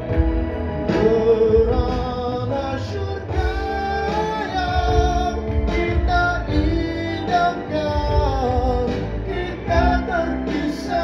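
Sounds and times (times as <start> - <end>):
instrumental accompaniment: 0.0 - 11.0
man singing into microphone: 0.7 - 11.0.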